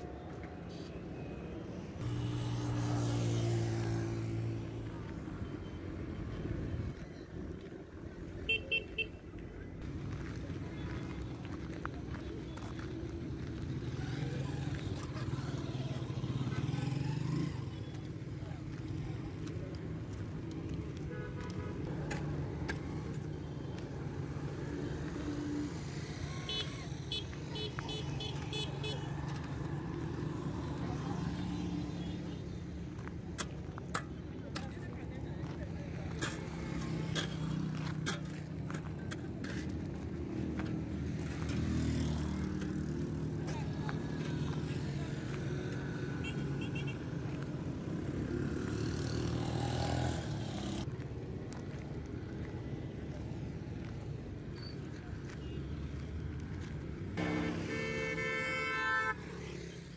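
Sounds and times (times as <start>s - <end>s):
road traffic rumble: 0.0s - 59.9s
vehicle engines droning: 0.0s - 59.9s
vehicle horn beeping: 8.5s - 9.2s, 46.2s - 47.0s, 57.2s - 59.7s.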